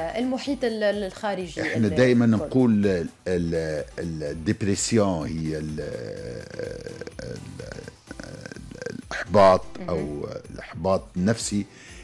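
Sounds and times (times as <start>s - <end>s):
man's voice drawn-out creaky syllable: 5.6s - 10.4s.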